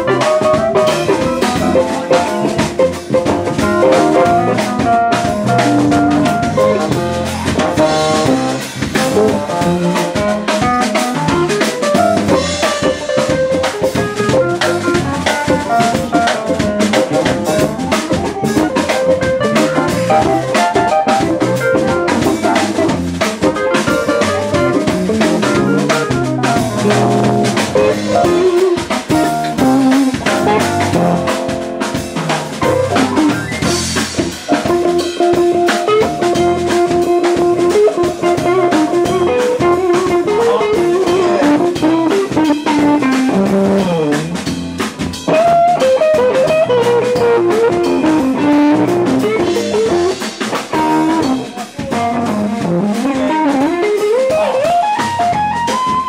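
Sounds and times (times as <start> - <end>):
bass guitar: 0.0 - 56.0
drum kit: 0.0 - 56.0
electric guitars: 0.0 - 56.0
keyboard: 0.0 - 56.0.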